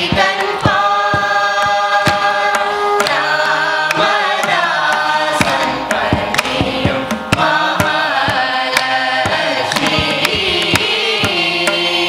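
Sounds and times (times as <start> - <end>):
hand drum strokes: 0.0 - 11.8
group of voices singing: 0.0 - 12.0.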